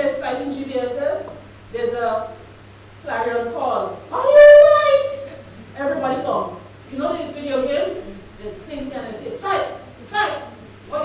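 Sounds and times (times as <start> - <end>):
woman holding a high vowel: 4.1 - 5.3.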